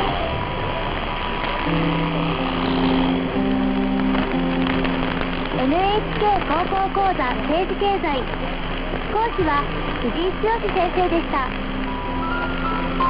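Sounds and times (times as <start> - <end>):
radio music of held notes: 0.0 - 13.0
radio static hiss and crackle: 0.0 - 13.0.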